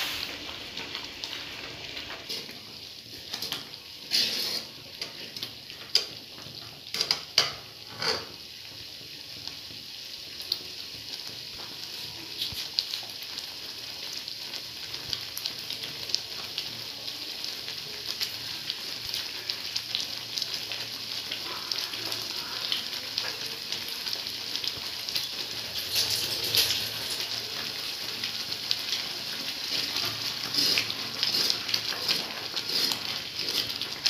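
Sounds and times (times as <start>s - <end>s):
mixture bubbling and sizzling: 0.0s - 34.0s.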